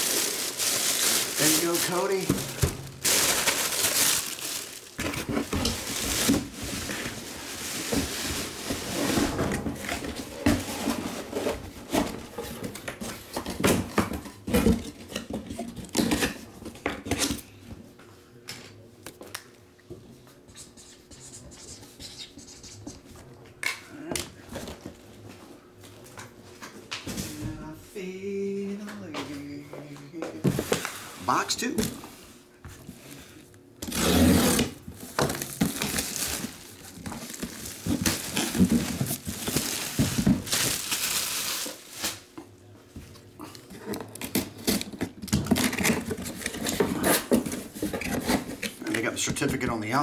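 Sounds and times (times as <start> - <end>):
crinkling plastic packaging: 0.0 - 8.9, 34.8 - 42.4.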